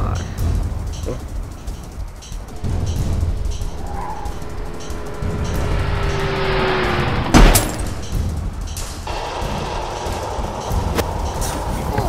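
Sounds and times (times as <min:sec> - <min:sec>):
car interior rumble: 0:01.5 - 0:12.0.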